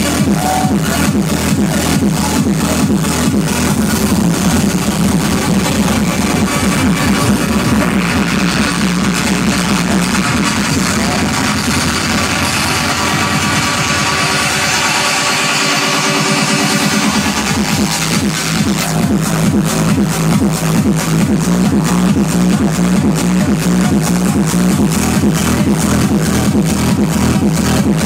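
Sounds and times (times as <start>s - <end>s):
electronic dance music: 0.0s - 28.0s.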